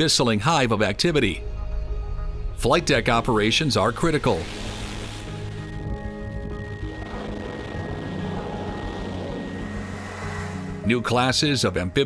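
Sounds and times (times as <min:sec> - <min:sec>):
jet engine roar with high whine: 0:02.6 - 0:11.3.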